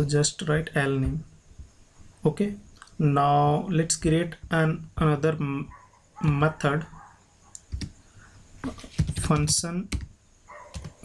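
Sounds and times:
keyboard keystrokes: 0:10.7 - 0:11.0.

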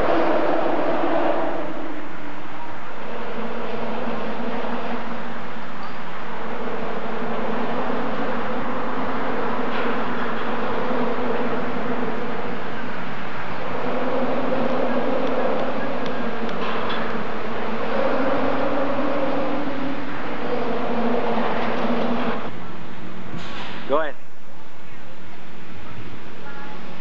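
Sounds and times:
loud droning hum: 0:00.0 - 0:27.0
rushing noise: 0:00.0 - 0:27.0.

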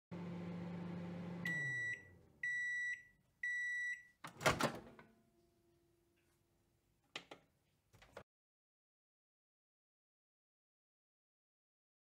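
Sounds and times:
microwave oven humming: 0:00.1 - 0:03.6
microwave beeps: 0:00.6 - 0:04.2.

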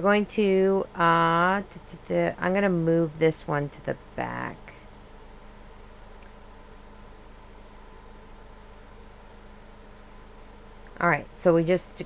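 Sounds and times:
faint hum and hiss: 0:00.0 - 0:12.0.

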